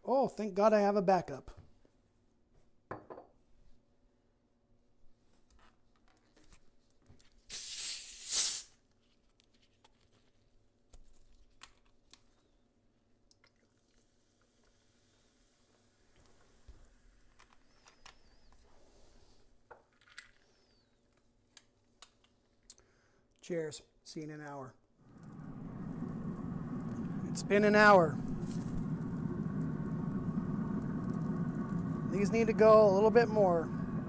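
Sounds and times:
carbonation hissing: 7.5s - 8.8s, 25.0s - 34.0s
faint fizz: 7.5s - 8.8s, 13.2s - 17.0s, 25.0s - 34.0s
soda poured over ice: 25.0s - 34.0s.

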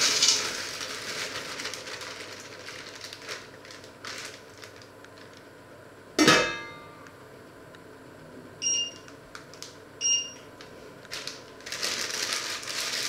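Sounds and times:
metal pot lid clanking: 6.2s - 6.9s.

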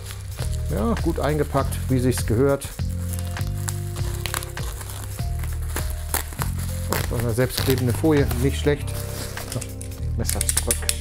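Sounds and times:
background music with held tones: 0.0s - 11.0s
bubble wrap crinkling: 0.0s - 11.0s.

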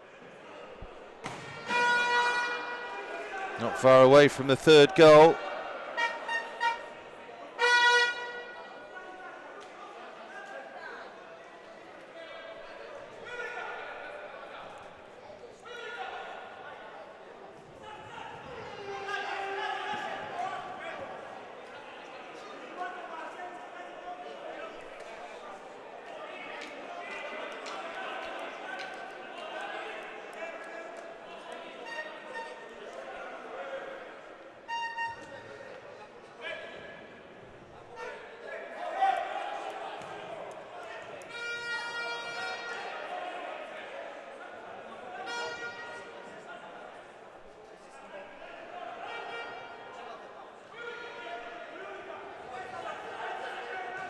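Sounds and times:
spectators chatting: 0.0s - 54.0s
players shouting: 0.8s - 8.5s.

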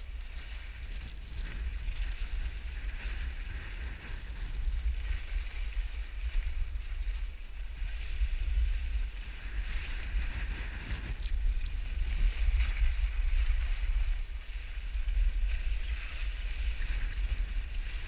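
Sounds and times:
skis scraping across snow: 0.0s - 18.0s
wind buffeting microphone: 0.0s - 18.0s.

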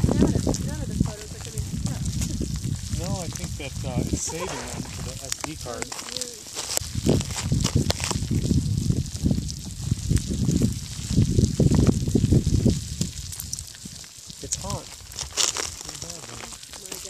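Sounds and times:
lava crust crackling: 0.0s - 17.0s
low rumbling of pouring lava: 0.0s - 17.0s.

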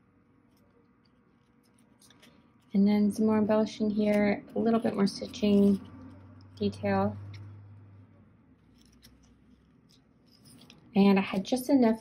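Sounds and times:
album pages clicking: 1.1s - 2.8s, 8.6s - 11.4s.

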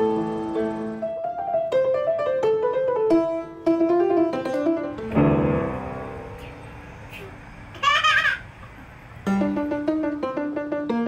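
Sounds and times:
loud piano chord: 0.0s - 7.1s, 9.2s - 11.0s
piano melody: 0.0s - 7.1s, 9.2s - 11.0s.

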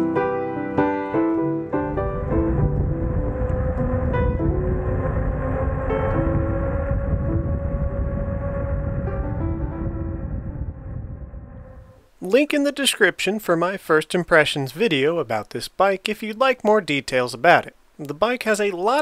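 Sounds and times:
piano music: 0.0s - 12.0s
electric bike rushing and whining: 1.8s - 12.0s.

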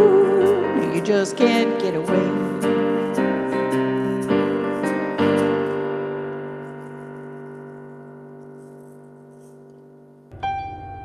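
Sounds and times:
electric keyboard chord: 10.0s - 11.0s.

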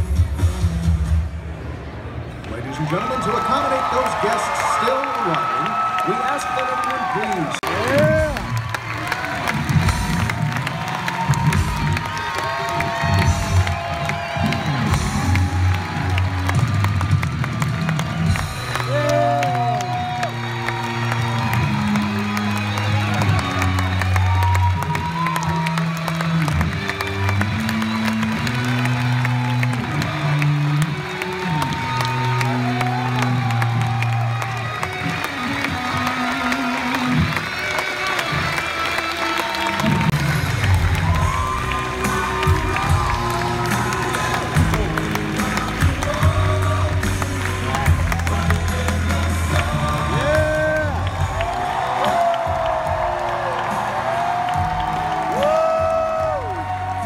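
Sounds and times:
loud live music over sound system: 0.0s - 2.0s, 2.9s - 57.0s
audience cheering and shouting: 2.5s - 57.0s.

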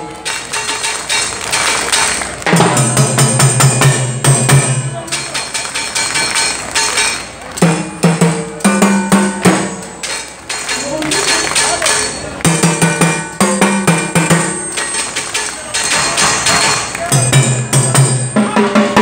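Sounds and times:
salsa band held notes: 0.0s - 19.0s.

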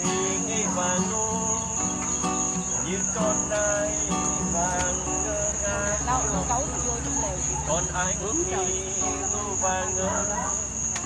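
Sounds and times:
people talking: 0.0s - 2.0s, 2.8s - 11.0s
crickets chirping: 0.0s - 11.0s.

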